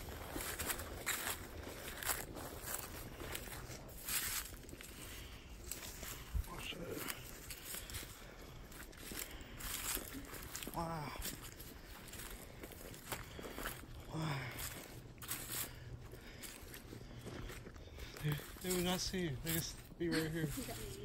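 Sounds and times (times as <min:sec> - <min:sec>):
footsteps crunching dry leaves: 0:00.0 - 0:21.0
brushing past pine branches: 0:18.3 - 0:21.0.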